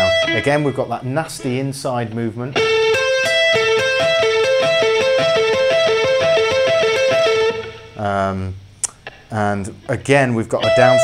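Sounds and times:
electric guitar arpeggio: 0.0 - 0.8, 2.5 - 8.0, 10.6 - 11.0.

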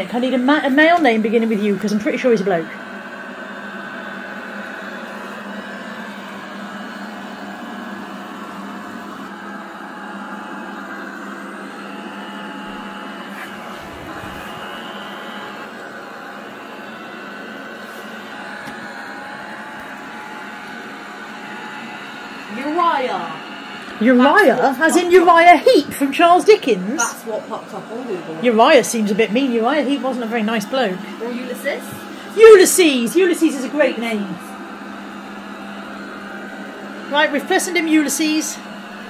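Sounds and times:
robot vacuum cleaner running: 0.0 - 39.0.

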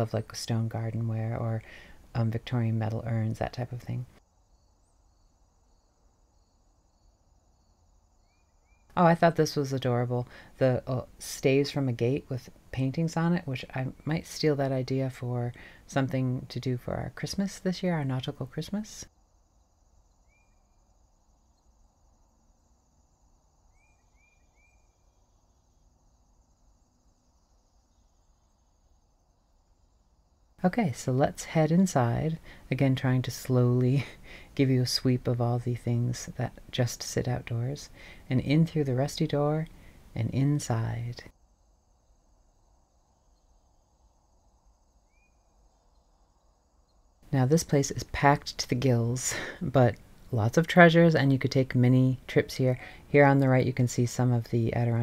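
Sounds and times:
small bird chirping: 3.0 - 9.6, 19.4 - 29.7, 41.9 - 48.6
insect trill: 4.2 - 15.8, 16.4 - 34.4, 37.0 - 49.2.

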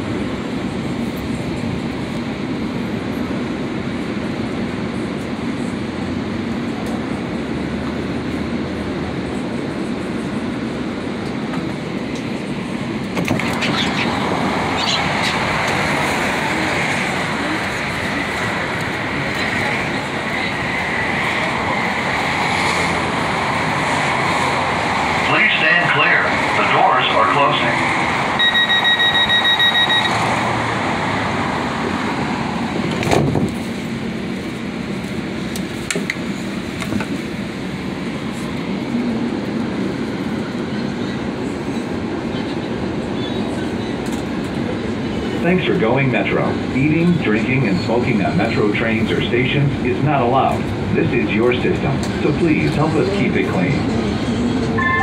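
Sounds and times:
train car running hum: 0.0 - 55.0
door-closing chime beeping: 54.8 - 55.0.

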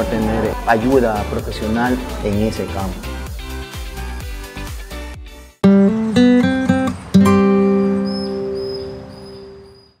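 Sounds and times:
acoustic guitar chord ringing: 5.6 - 9.5.

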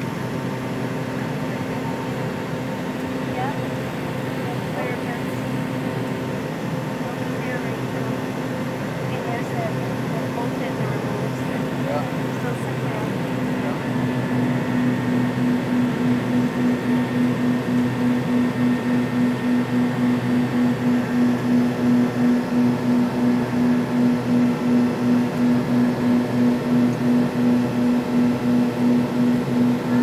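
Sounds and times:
jet engines droning: 0.0 - 30.0.

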